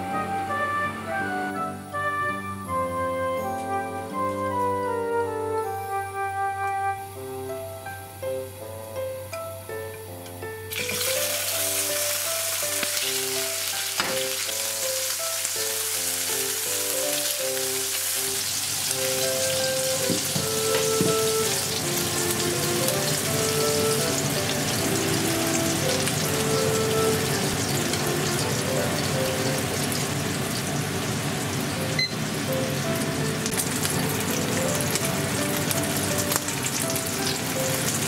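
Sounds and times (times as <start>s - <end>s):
soft background music: 0.0s - 38.0s
garlic and bacon sizzling: 7.0s - 38.0s.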